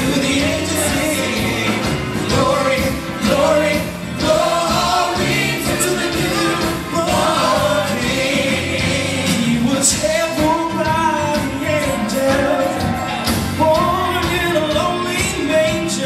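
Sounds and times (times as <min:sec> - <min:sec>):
man singing into microphone: 0:00.0 - 0:04.0, 0:06.1 - 0:16.0
backing singers: 0:00.0 - 0:16.0
band playing: 0:00.0 - 0:16.0.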